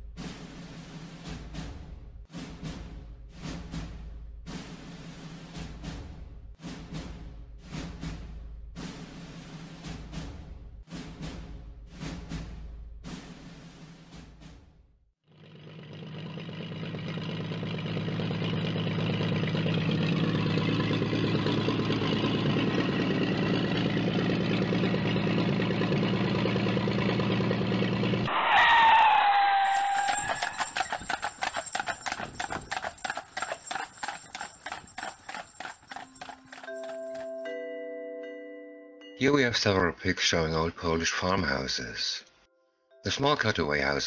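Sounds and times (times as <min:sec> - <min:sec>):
horse whinnying: 0:28.4 - 0:35.7
clip-clop of hooves: 0:28.7 - 0:37.5.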